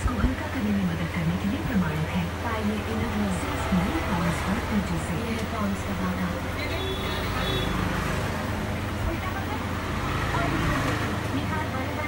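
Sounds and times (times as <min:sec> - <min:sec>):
people talking: 0:00.0 - 0:07.8, 0:08.9 - 0:12.0
road traffic rumble: 0:00.0 - 0:12.0.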